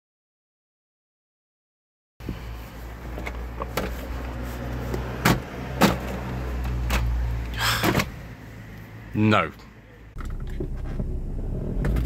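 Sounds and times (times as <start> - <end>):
car engine idling: 9.8 - 12.0.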